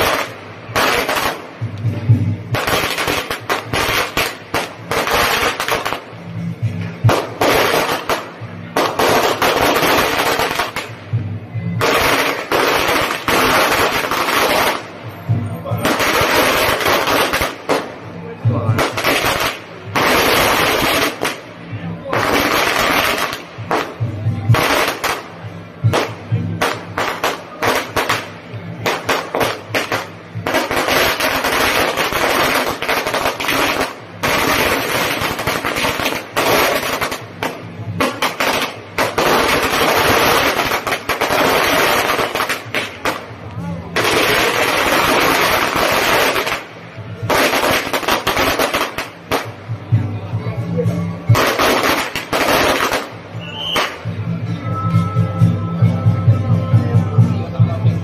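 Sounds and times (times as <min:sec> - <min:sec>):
firecrackers crackling: 0:00.0 - 0:55.2.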